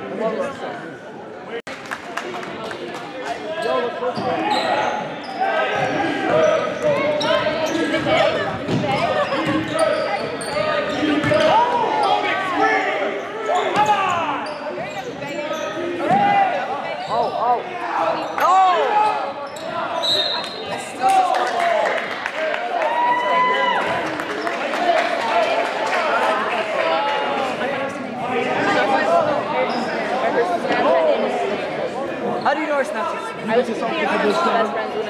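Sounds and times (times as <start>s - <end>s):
voices echoing in a hall: 0.0s - 35.0s
sneakers squeaking: 3.4s - 12.4s, 13.1s - 21.0s.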